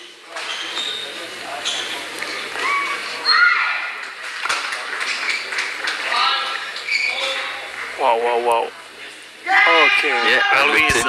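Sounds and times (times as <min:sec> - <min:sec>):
shoes squeaking on court: 0:00.3 - 0:03.4, 0:04.4 - 0:07.9.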